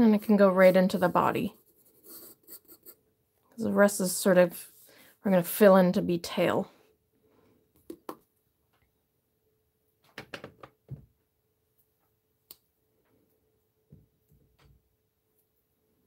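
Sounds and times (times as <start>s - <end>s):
pencil tapping and scraping paper: 0.4s - 3.0s, 7.8s - 8.3s, 10.1s - 11.0s.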